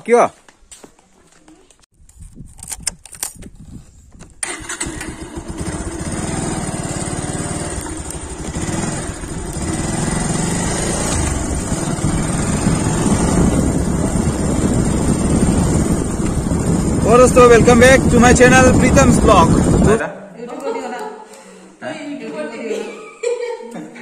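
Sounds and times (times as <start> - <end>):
wind on microphone: 2.0 - 4.4, 7.7 - 20.0
motorcycle engine running: 4.4 - 20.0.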